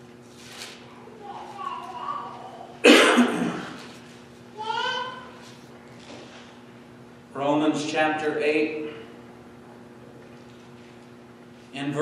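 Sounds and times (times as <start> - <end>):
man coughing: 2.8 - 3.8.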